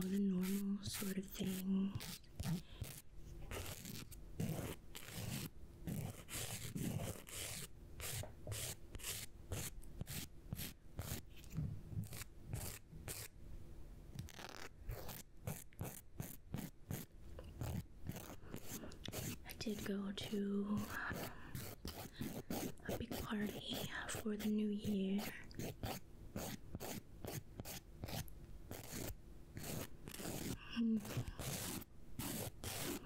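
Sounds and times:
nail file scraping fingernails: 0:00.0 - 0:13.3, 0:14.2 - 0:19.9, 0:20.8 - 0:33.0.

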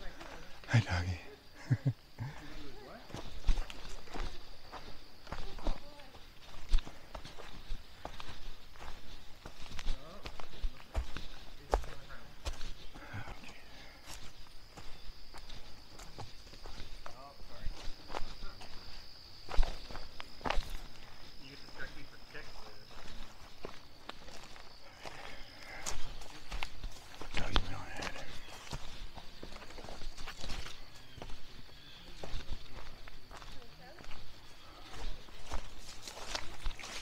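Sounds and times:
footsteps on dirt trail: 0:00.0 - 0:37.0.

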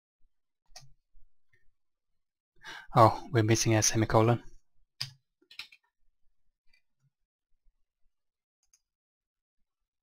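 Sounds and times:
man breathing in: 0:02.6 - 0:03.0
man speaking: 0:02.9 - 0:04.5.

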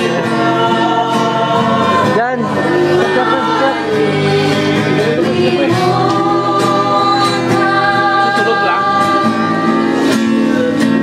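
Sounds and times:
acoustic guitar: 0:00.0 - 0:11.0
group singing a hymn-like song: 0:00.0 - 0:11.0.

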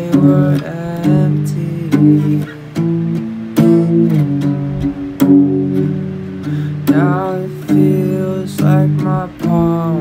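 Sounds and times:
acoustic guitar strummed chords: 0:00.0 - 0:10.0.

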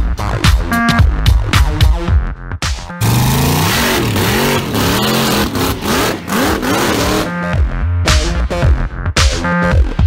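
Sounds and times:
drag car engine accelerating: 0:03.0 - 0:07.5.

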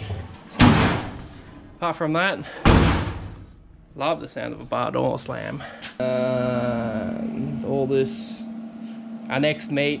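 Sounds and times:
car door slamming shut: 0:02.7 - 0:03.3.

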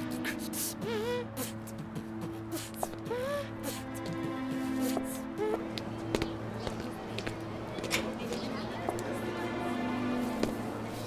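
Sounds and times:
low sustained drama score: 0:00.0 - 0:11.0.

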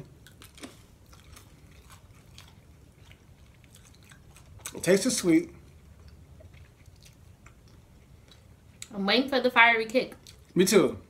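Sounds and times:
faint chewing: 0:00.0 - 0:09.0, 0:10.1 - 0:10.6.

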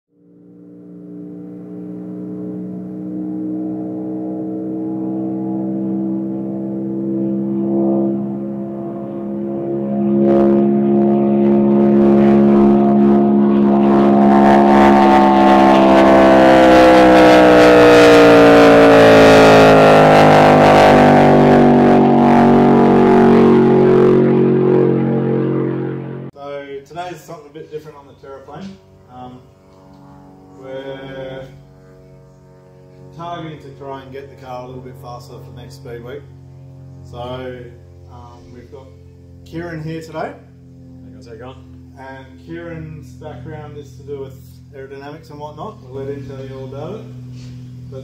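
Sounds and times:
racing car engine accelerating: 0:00.1 - 0:26.4, 0:27.8 - 0:48.0.

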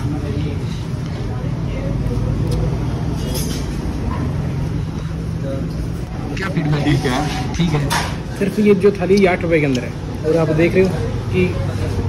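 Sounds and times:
faint voices: 0:05.2 - 0:08.3.

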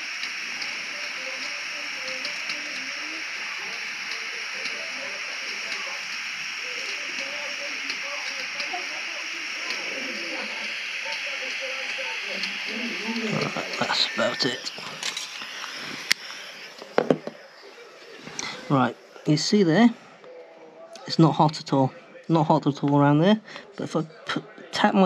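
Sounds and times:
blowtorch flame hissing: 0:00.0 - 0:19.4.

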